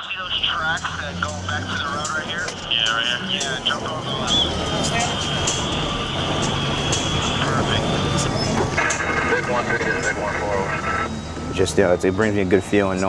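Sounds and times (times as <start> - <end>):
road noise: 0.0 - 13.0
truck engine drone: 0.0 - 13.0.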